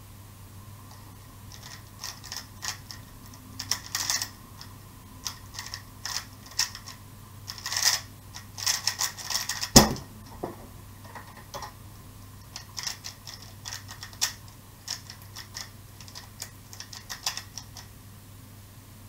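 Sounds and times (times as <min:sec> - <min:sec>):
puzzle cube plastic clicks: 0:00.9 - 0:10.0, 0:12.4 - 0:17.9
cube thumping on timer: 0:09.7 - 0:10.6.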